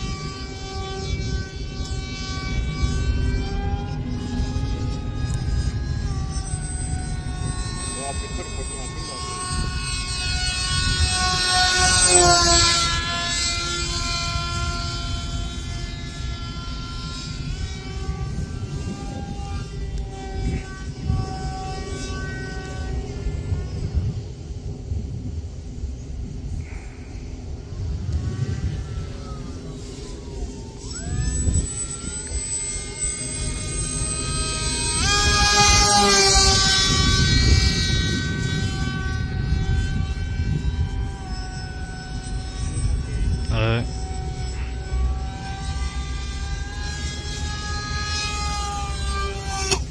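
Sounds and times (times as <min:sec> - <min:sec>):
model plane motor whining: 0:00.0 - 0:49.9
wind rumble on microphone: 0:00.0 - 0:49.9.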